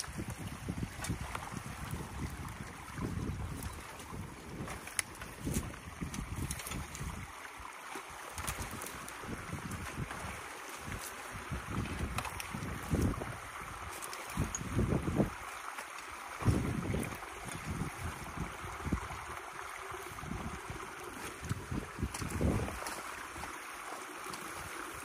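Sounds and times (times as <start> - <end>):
wind buffeting microphone: 0.0 - 7.6, 8.4 - 15.6, 16.2 - 23.6
splashing: 0.0 - 25.0
water rushing through dam: 0.0 - 25.0.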